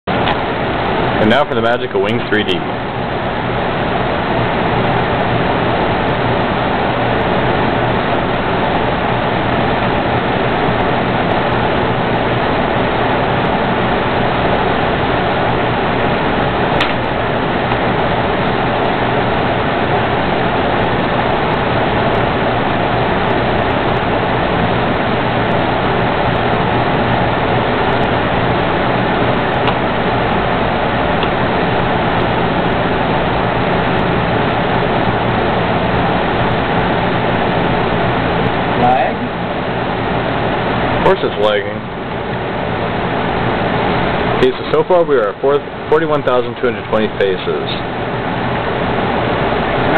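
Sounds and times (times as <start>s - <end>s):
steady rushing noise: 0.0s - 49.9s.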